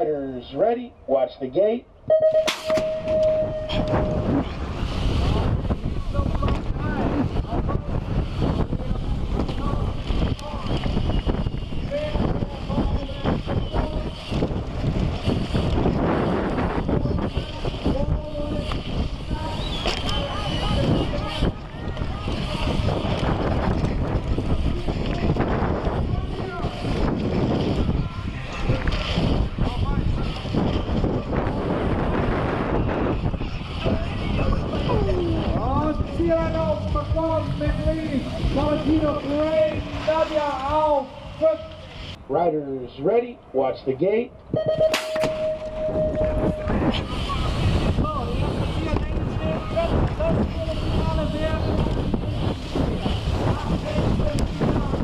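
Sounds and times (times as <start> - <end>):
wind noise on microphone: 2.0 - 42.2, 44.4 - 55.0
start gate tone: 2.1 - 4.3, 44.6 - 46.7
sharp bang of gate dropping: 2.4 - 3.8, 44.8 - 45.9
faint voices: 2.9 - 42.2, 45.6 - 55.0
tyres rumbling on track: 2.9 - 42.2, 45.8 - 55.0.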